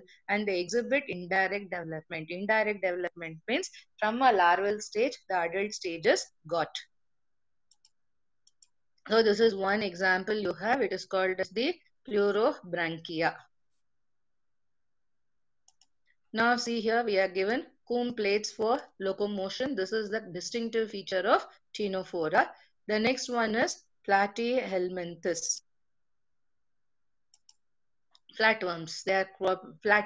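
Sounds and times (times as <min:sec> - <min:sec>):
computer mouse clicks: 0:07.6 - 0:09.0, 0:15.6 - 0:16.2, 0:27.3 - 0:28.4.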